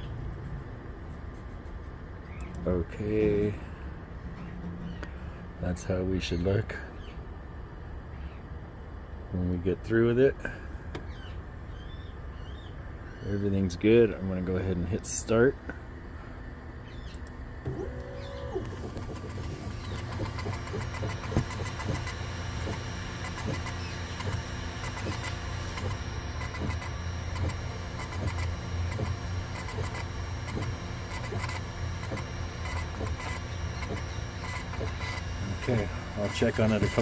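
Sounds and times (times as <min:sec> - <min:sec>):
stepper motors whining with ticks: 0:01.6 - 0:03.6, 0:16.9 - 0:37.0
laser engraver humming: 0:15.0 - 0:37.0.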